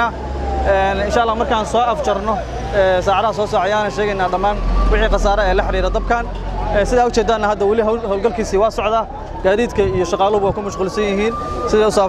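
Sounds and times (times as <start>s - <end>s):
man speaking: 0.0s - 12.0s
truck engine rumbling: 0.0s - 12.0s.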